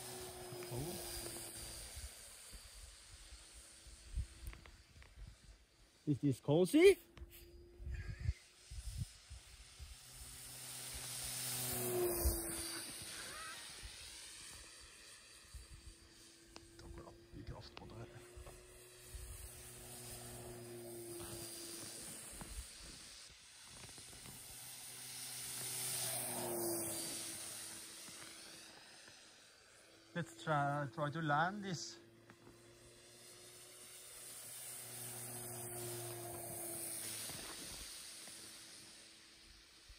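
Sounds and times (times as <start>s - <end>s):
model plane propeller whir: 0.0s - 39.9s.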